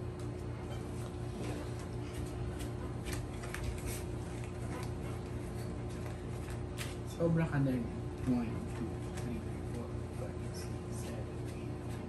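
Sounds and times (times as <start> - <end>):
low room hum: 0.0 - 12.0
cards clicking and rustling: 6.0 - 7.0.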